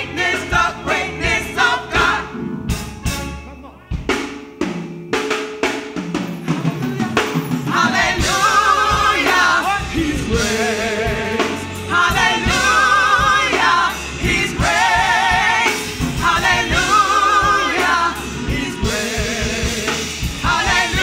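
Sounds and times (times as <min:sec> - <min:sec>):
gospel group singing in harmony: 0:00.0 - 0:03.2, 0:06.5 - 0:21.0
drum kit: 0:00.0 - 0:21.0.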